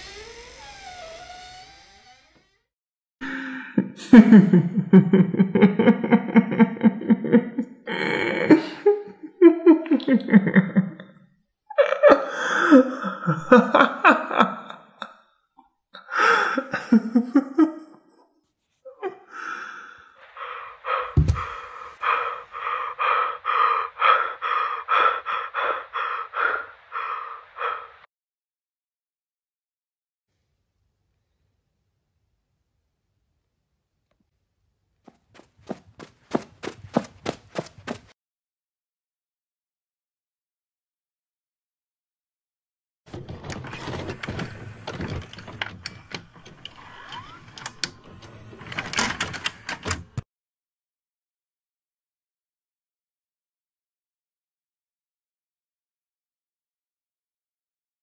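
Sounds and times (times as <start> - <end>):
person gasping: 3.2 - 4.2, 7.9 - 9.0, 12.2 - 13.4, 16.0 - 16.8, 19.2 - 28.0
thump: 21.2 - 21.5.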